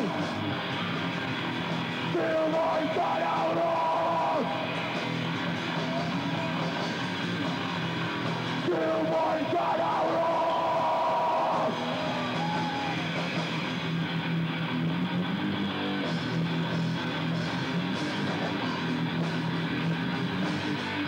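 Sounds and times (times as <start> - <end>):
bass: 0.0 - 21.0
distorted electric guitars: 0.0 - 21.0
drums: 0.0 - 21.0.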